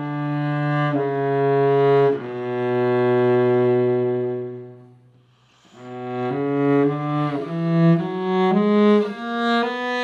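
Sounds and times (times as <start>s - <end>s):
cello long bowed note: 0.0s - 10.0s.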